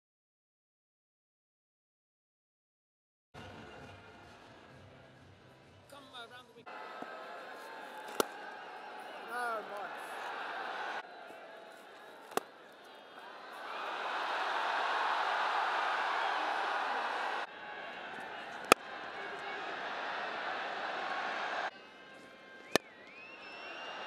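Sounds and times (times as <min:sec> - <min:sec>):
stadium crowd cheering: 0:06.7 - 0:24.0
cricket bat striking ball: 0:07.9 - 0:08.5, 0:12.2 - 0:12.6, 0:18.2 - 0:18.9.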